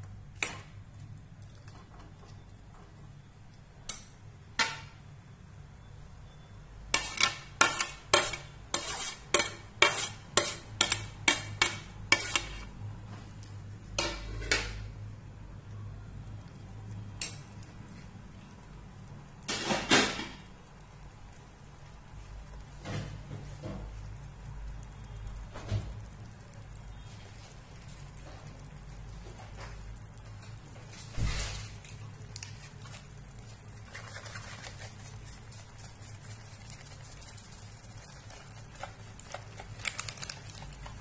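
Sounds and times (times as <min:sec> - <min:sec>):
ladle clinking and scraping pan: 0:07.0 - 0:12.7.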